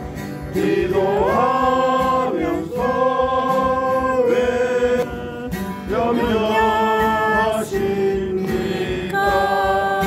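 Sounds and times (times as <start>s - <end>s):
acoustic guitar: 0.0s - 10.0s
man singing: 0.8s - 10.0s.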